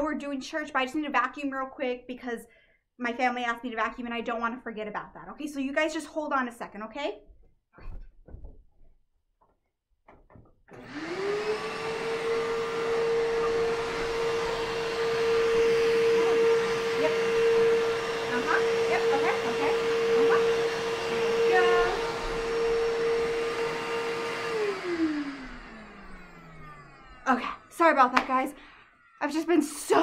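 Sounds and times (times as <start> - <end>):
vacuum cleaner running: 10.7 - 30.0.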